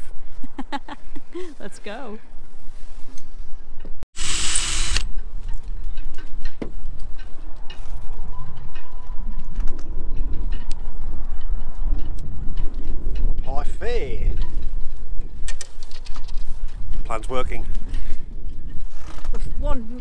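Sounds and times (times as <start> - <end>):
cordless drill drilling: 4.2 - 5.1
wind rumble on microphone: 4.8 - 20.0.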